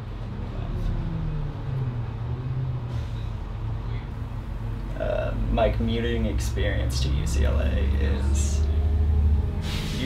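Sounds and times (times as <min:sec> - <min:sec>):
bus engine droning: 0:00.0 - 0:10.0.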